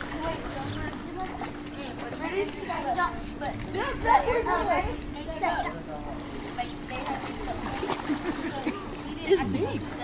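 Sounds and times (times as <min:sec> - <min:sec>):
children calling and chattering: 0:00.0 - 0:10.0
steady low hum: 0:00.0 - 0:10.0.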